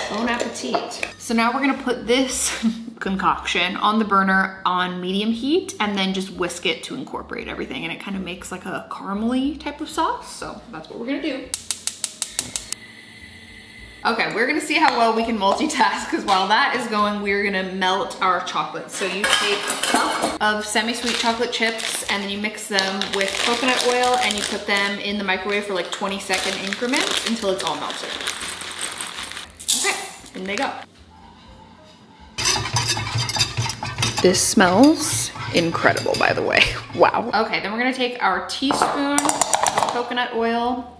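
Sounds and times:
gas burner hissing: 0:11.6 - 0:14.2.

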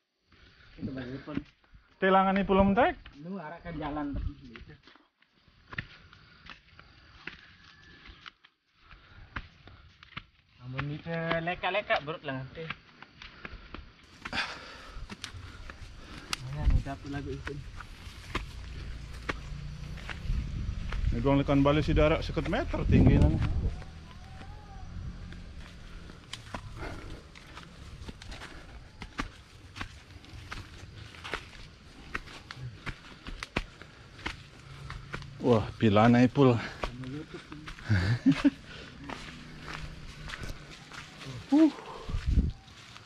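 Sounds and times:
footsteps on dirt path: 0:00.2 - 0:43.0
leaves rustling: 0:14.1 - 0:43.0
low microphone rumble: 0:18.6 - 0:25.2.

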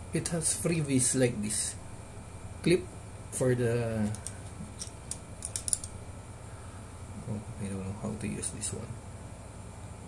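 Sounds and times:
small sharp plastic clicks: 0:04.1 - 0:05.9.

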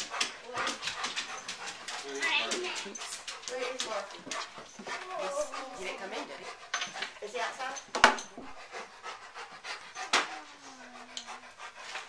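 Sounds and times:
rapid panting: 0:00.0 - 0:12.0.

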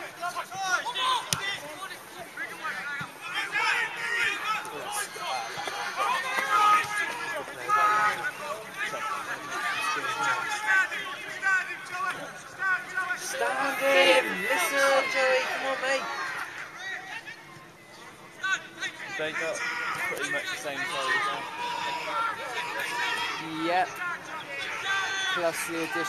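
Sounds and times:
indistinct chatter and calls: 0:00.0 - 0:26.0.

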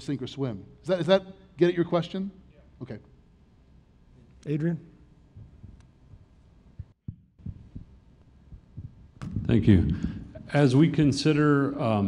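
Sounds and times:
faint room hum: 0:00.0 - 0:12.0
microphone handling thumps: 0:05.4 - 0:07.9, 0:08.5 - 0:10.4.

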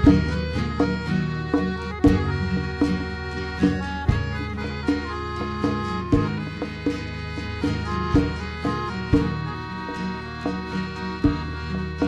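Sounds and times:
folk band playing dance tune: 0:00.0 - 0:12.0.

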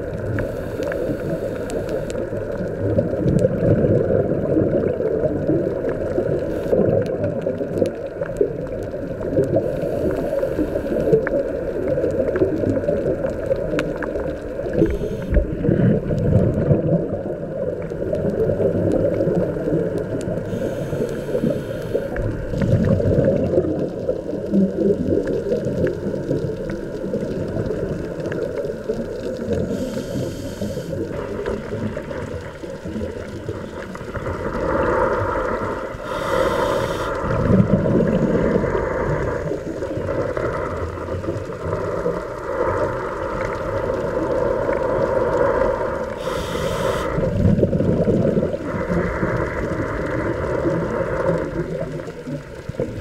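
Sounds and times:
exhaled bubbles bursting: 0:00.0 - 0:53.0
underwater rumble: 0:00.0 - 0:53.0
diver breathing through regulator: 0:00.4 - 0:02.3, 0:09.5 - 0:11.4, 0:14.8 - 0:16.0, 0:20.4 - 0:22.9, 0:29.6 - 0:31.5, 0:34.6 - 0:39.7, 0:44.6 - 0:47.4.

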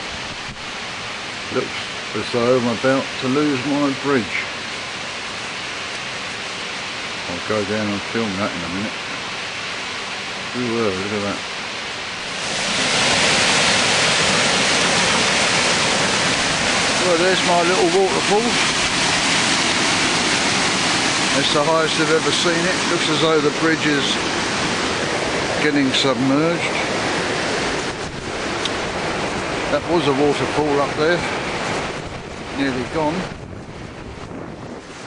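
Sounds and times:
floodwater rushing: 0:00.0 - 0:35.0
water pouring over waterfall: 0:12.2 - 0:33.2.

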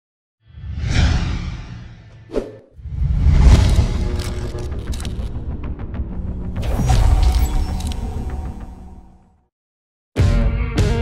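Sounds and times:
whoosh: 0:00.5 - 0:05.5
deep rumble: 0:00.7 - 0:06.6.

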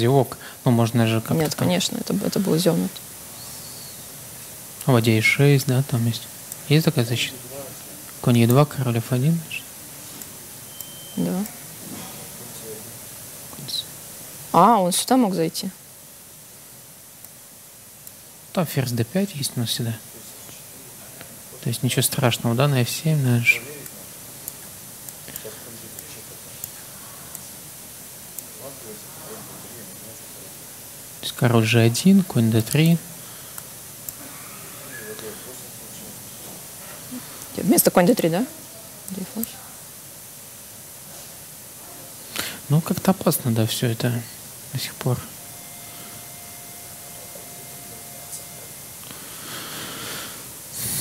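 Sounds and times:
person speaking: 0:00.0 - 0:03.2, 0:04.8 - 0:10.5, 0:31.2 - 0:33.2, 0:34.1 - 0:39.8, 0:41.9 - 0:49.2
steady background hiss: 0:00.0 - 0:51.0
breath-like rush: 0:49.0 - 0:51.0.

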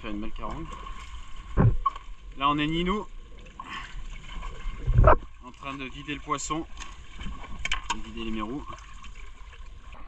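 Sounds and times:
water lapping against boat hull: 0:00.0 - 0:10.0
loud low thump: 0:01.6 - 0:01.8.

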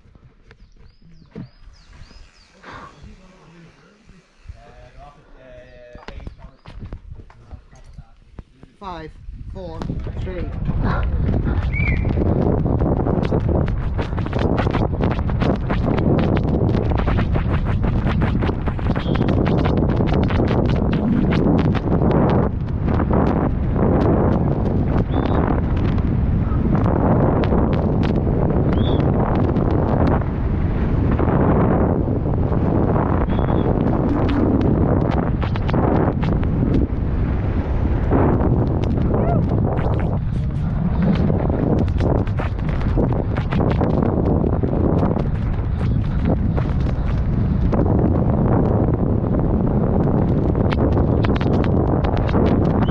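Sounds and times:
bike tyre noise: 0:00.0 - 0:52.9
wind rush over microphone: 0:00.0 - 0:52.9.

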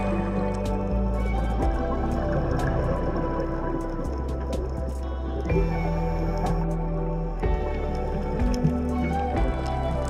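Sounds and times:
slow sustained chords over bass: 0:00.0 - 0:10.0.

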